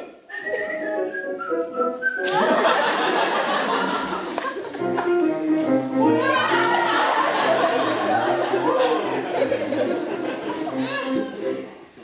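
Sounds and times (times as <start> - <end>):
person whistling a tune: 0.3 - 2.4.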